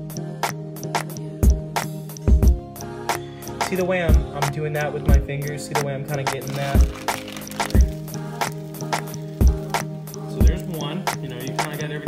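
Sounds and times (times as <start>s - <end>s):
crisp snare hits: 6.3s - 9.9s.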